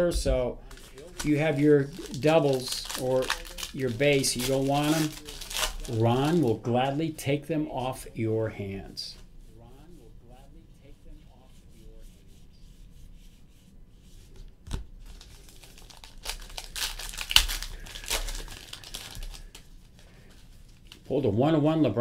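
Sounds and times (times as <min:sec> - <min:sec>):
foil wrapper tearing and crinkling: 0:00.7 - 0:06.6, 0:14.7 - 0:21.1.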